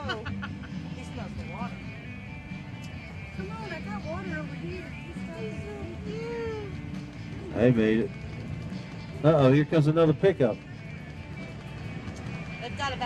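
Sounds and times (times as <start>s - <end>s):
background music with singing: 0.0s - 13.0s.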